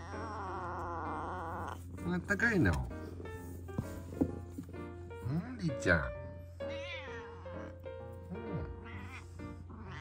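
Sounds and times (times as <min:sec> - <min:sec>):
cat meowing: 0:00.0 - 0:01.8, 0:06.6 - 0:10.0
soft background music: 0:00.0 - 0:10.0.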